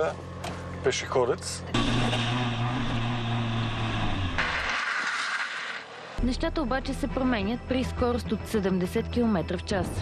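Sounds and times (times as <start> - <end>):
car engine running steadily: 1.7 - 4.5.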